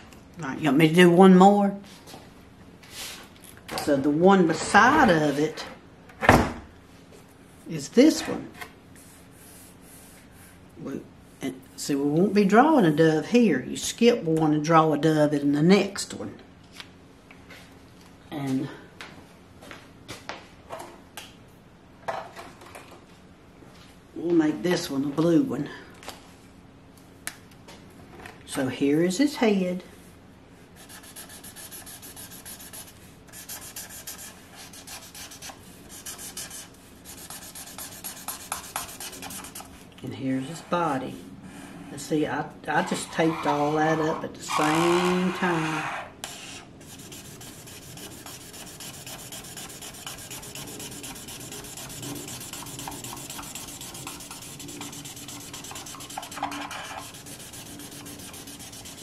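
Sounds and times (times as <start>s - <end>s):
marker scribbling on paper: 30.8s - 39.7s, 46.3s - 59.0s.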